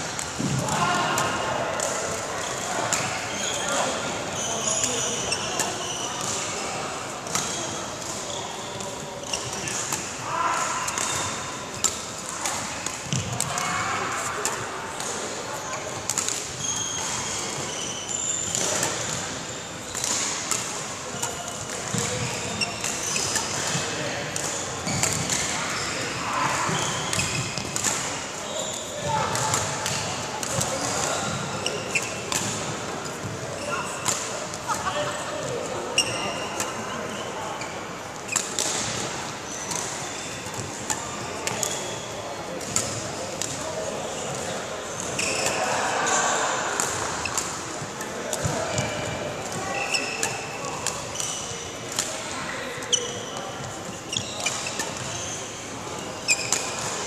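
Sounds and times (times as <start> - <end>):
voices in background: 0.1 - 57.0
shoes squeaking on court: 1.8 - 46.2, 46.8 - 57.0
racket hitting shuttlecock: 18.4 - 28.3, 29.3 - 32.9, 34.0 - 34.6, 38.2 - 41.8, 46.8 - 52.2.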